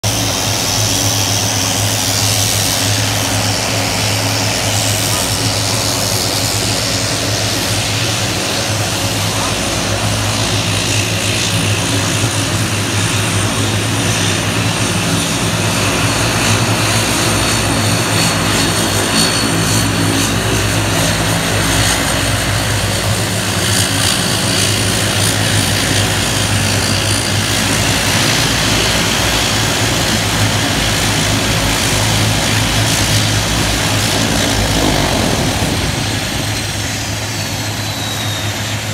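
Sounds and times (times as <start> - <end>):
propeller engine drone: 0.0 - 38.9
engine hiss: 27.4 - 38.9.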